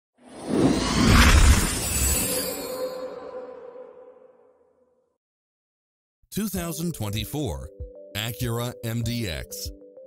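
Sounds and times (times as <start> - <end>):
shimmering glassy whoosh: 0.2 - 4.8.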